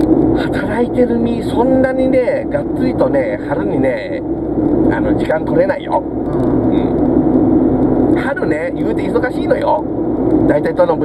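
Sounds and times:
car cabin road and engine drone: 0.0 - 11.0.

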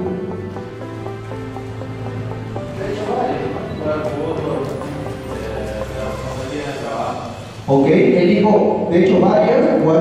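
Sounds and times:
man speaking: 2.6 - 10.0.

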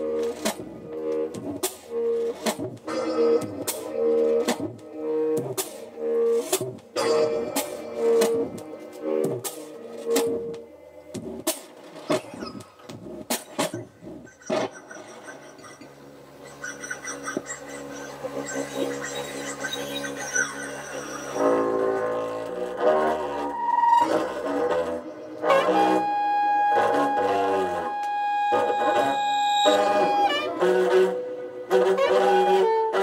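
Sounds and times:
double bass: 0.0 - 14.3, 16.1 - 33.0
low electronic drone: 0.0 - 32.8
saxophones playing free jazz: 21.4 - 33.0.

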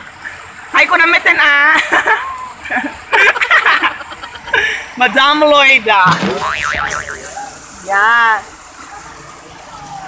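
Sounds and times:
cartoon boing with wobbling pitch: 6.1 - 7.4.

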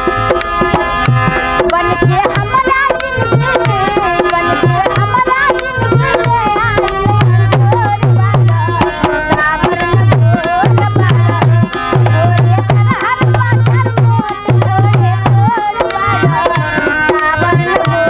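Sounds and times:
harmonium chords: 0.0 - 18.0
woman singing folk song: 1.6 - 18.0.

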